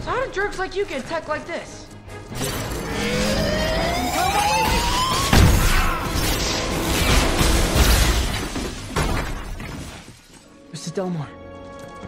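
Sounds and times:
debris and glass shattering: 2.4s - 10.5s.

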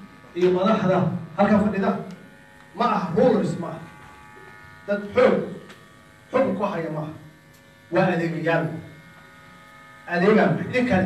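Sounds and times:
electrical buzz and hum: 0.0s - 11.0s
man speaking: 0.4s - 2.1s, 2.8s - 3.8s, 4.9s - 5.5s, 10.1s - 11.0s.

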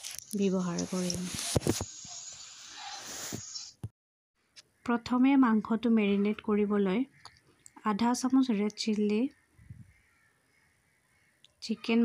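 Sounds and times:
woman speaking: 0.4s - 1.4s, 4.9s - 7.2s, 7.8s - 9.3s, 11.6s - 12.0s.

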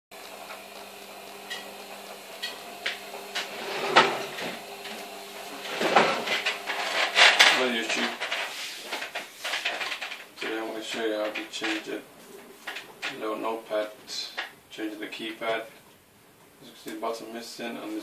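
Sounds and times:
clatter and rustling: 5.6s - 13.2s.

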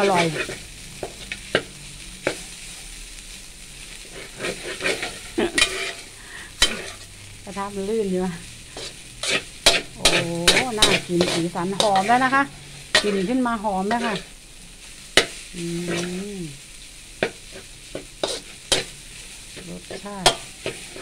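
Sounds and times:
metal spatula scraping a wok: 0.0s - 2.9s, 3.8s - 7.5s, 8.5s - 21.0s
frying sizzle: 0.0s - 21.0s.

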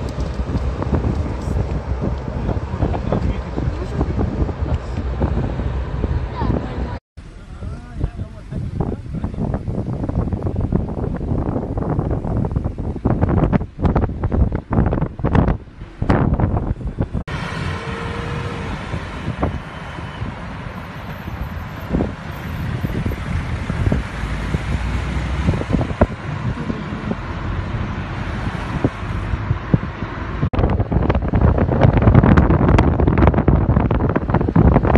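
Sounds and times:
car and traffic noise: 0.0s - 34.9s
wind buffeting microphone: 0.0s - 34.9s.

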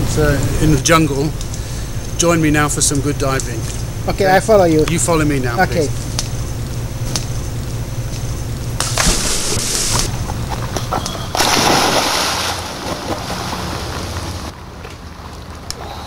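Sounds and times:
low engine hum: 0.0s - 16.0s
diver splashing into water: 8.8s - 10.1s, 11.3s - 14.5s.

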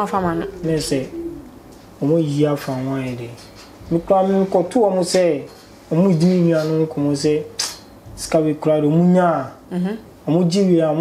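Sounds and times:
man speaking: 0.3s - 1.4s, 2.0s - 7.5s, 8.2s - 9.6s, 10.3s - 11.0s.

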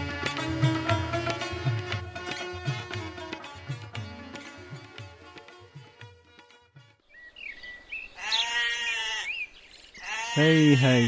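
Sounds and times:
sitar and tabla music: 0.0s - 7.1s, 10.4s - 11.0s
sheep bleating: 8.2s - 9.4s, 10.0s - 11.0s.

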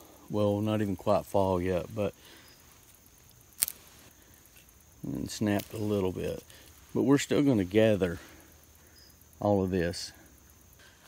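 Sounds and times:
dry stalk snapping: 2.9s - 4.7s, 5.5s - 6.8s.

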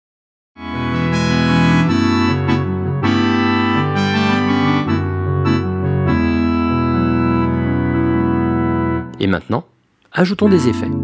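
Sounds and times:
keyboard chord held: 0.6s - 9.2s, 10.4s - 11.0s.

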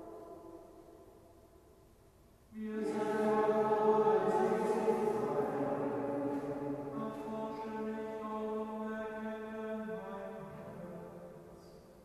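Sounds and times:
unison chant: 0.0s - 1.0s, 2.6s - 11.2s.

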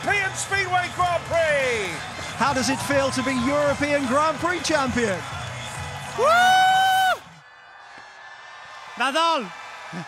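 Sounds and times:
high-pitched whoop of joy: 6.1s - 7.3s.

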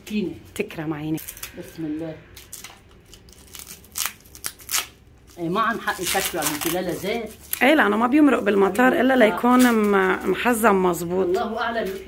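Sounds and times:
cling film crinkling rips: 2.4s - 7.7s.

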